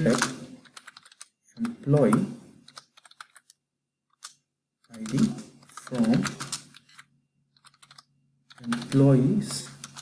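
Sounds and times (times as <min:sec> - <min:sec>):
computer keyboard typing: 0:00.0 - 0:09.2, 0:09.8 - 0:10.0.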